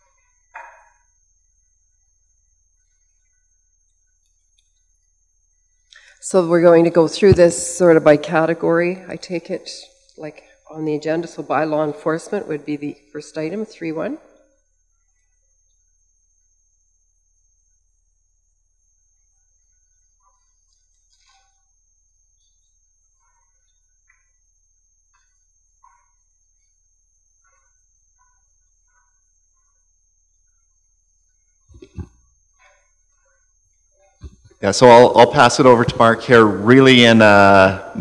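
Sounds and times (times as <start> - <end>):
faint small sounds: 0.0 - 6.6, 14.1 - 34.7
faint steady hum: 0.0 - 38.0.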